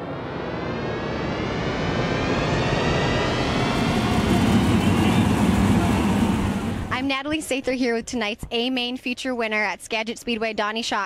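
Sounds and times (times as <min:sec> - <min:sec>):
race car engine running hard: 0:00.3 - 0:06.9.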